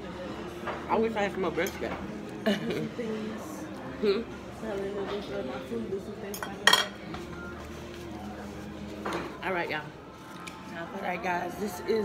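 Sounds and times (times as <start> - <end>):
fork clinking on ceramic plate: 6.3 - 7.0.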